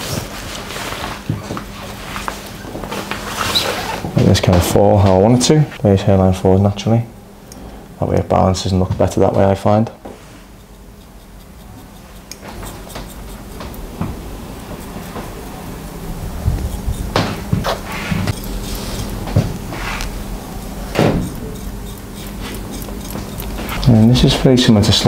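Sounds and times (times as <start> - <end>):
steady low hum: 0.0 - 25.0
razor scraping through hair: 10.3 - 24.3.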